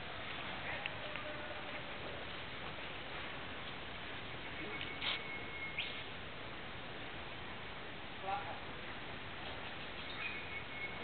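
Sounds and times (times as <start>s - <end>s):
forest background hiss: 0.0s - 11.0s
bird whistling call: 4.4s - 6.1s, 10.0s - 11.0s
short sharp bird calls: 4.5s - 6.1s.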